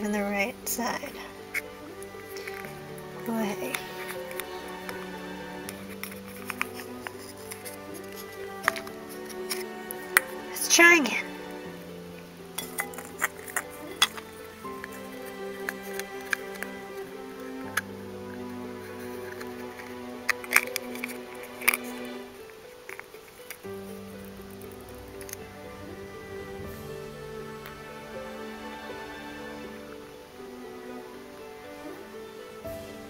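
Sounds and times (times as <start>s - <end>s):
background music: 0.0s - 33.0s
plastic pieces clicking: 3.6s - 10.3s, 12.6s - 17.1s, 18.8s - 25.5s.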